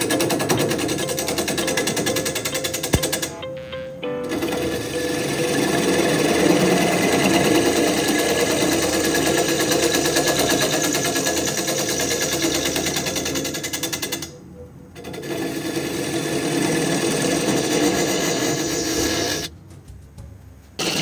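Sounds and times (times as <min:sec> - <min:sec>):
lathe humming: 0:04.2 - 0:14.4, 0:15.0 - 0:19.5
gouge chattering on wood lathe: 0:04.6 - 0:14.4, 0:15.0 - 0:19.5, 0:20.8 - 0:21.0.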